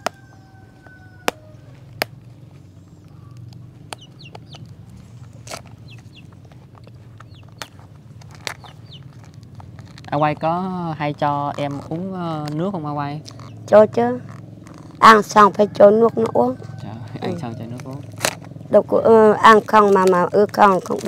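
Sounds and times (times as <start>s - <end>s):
rooster crowing: 0.0s - 2.0s, 15.3s - 17.7s
chickens clucking: 0.0s - 9.4s.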